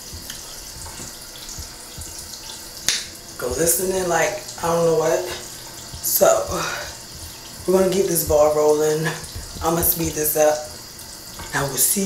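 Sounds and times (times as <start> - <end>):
tap water running into sink: 0.0 - 12.0.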